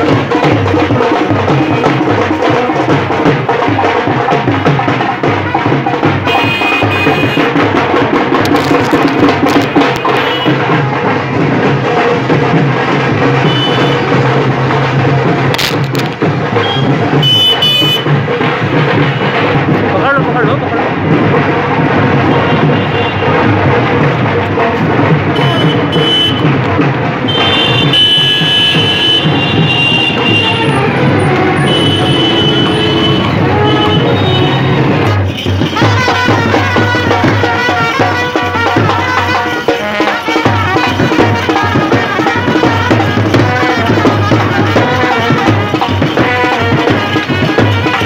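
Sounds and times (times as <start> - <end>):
procession music with drums: 0.0 - 48.0
crowd voices: 29.3 - 48.0.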